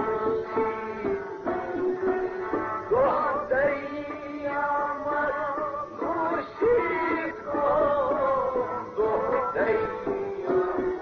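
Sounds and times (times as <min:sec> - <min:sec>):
instrumental accompaniment: 0:00.0 - 0:11.0
person singing wavering melody: 0:00.0 - 0:11.0.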